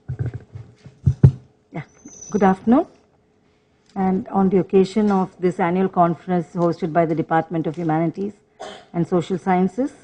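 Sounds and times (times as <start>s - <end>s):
sharp knocks: 0.0s - 1.5s
microphone handling thumps: 0.0s - 1.6s.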